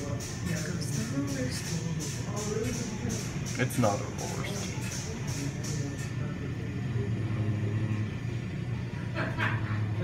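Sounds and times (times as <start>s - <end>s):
car wash machinery hum: 0.0s - 10.0s.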